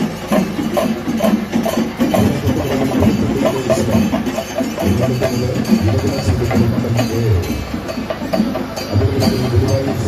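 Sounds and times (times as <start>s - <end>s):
percussion-led music: 0.0s - 10.0s.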